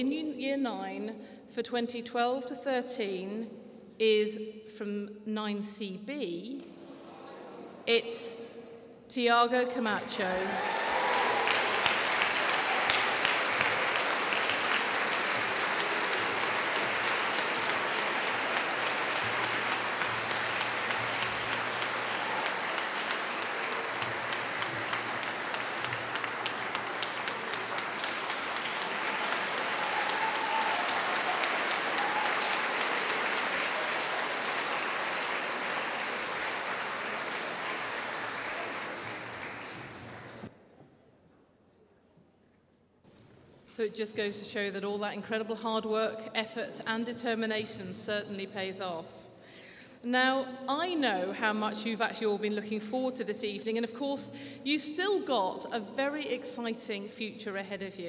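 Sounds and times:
audience clapping: 0:10.2 - 0:40.5.

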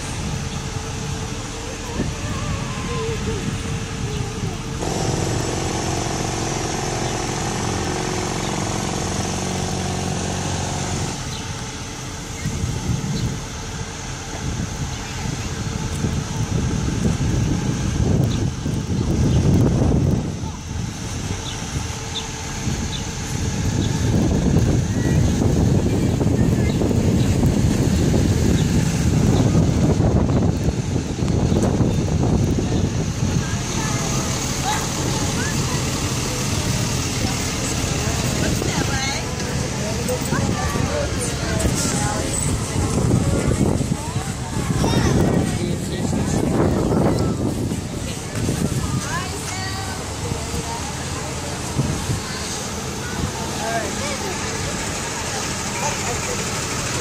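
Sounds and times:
bus engine running: 0:00.0 - 0:57.0.

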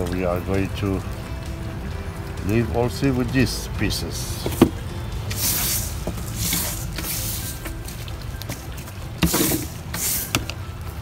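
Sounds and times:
brush sweeping soil on plastic tarp: 0:05.3 - 0:08.1, 0:09.2 - 0:10.6.

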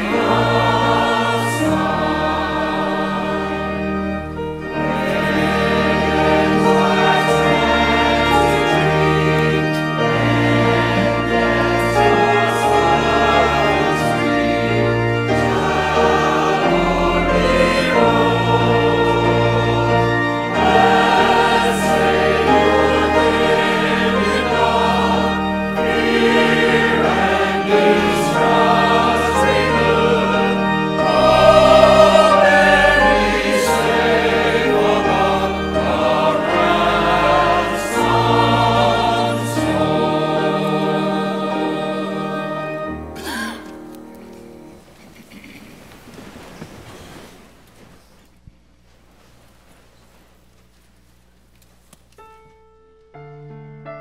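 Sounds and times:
choir singing: 0:00.0 - 0:44.9
organ playing: 0:00.0 - 0:45.4, 0:52.2 - 0:54.0.

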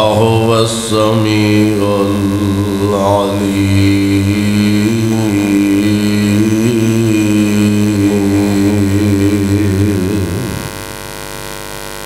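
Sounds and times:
man chanting over loudspeaker: 0:00.0 - 0:10.7
electrical mains hum: 0:00.0 - 0:12.0.

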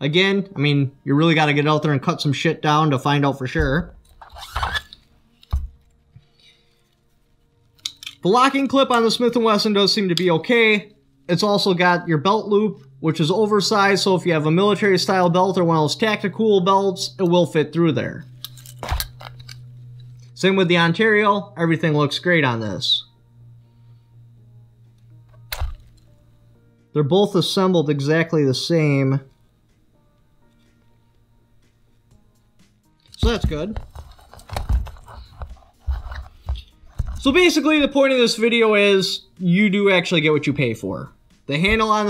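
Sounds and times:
low steady hum: 0:00.0 - 0:42.0
plastic scabbard rustling scrape: 0:33.8 - 0:37.3.

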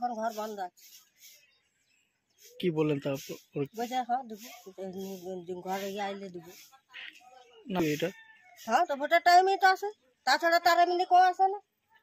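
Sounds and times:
woman speaking: 0:00.0 - 0:00.8, 0:03.7 - 0:07.2, 0:08.6 - 0:11.6.

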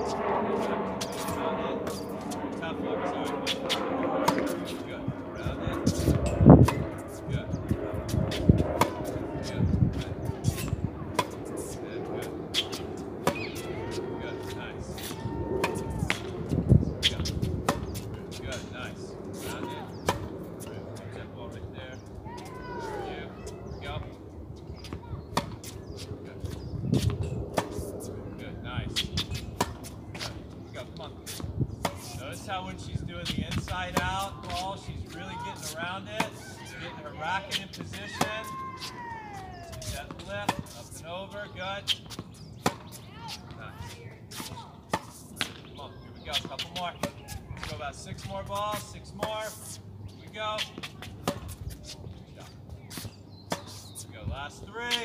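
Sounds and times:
tennis balls bouncing on court: 0:09.9 - 0:11.7, 0:12.5 - 0:18.7, 0:24.7 - 0:27.9, 0:29.0 - 0:54.2
rackets striking tennis balls: 0:12.6 - 0:18.8, 0:28.9 - 0:54.1.

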